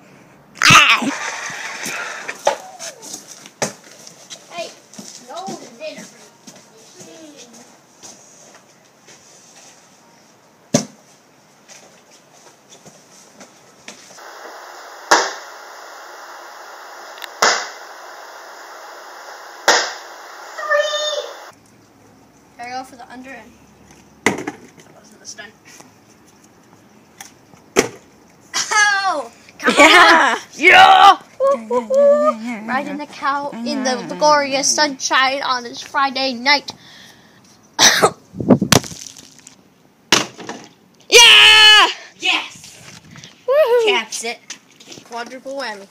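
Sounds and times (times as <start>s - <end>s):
plastic bottle thudding on concrete: 24.2s - 24.7s, 38.7s - 40.7s
person shouting: 41.1s - 42.1s.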